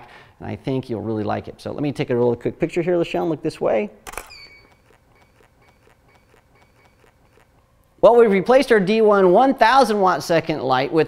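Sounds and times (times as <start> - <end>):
camera shutter click: 4.1 - 7.5
faint ticking: 4.4 - 8.0.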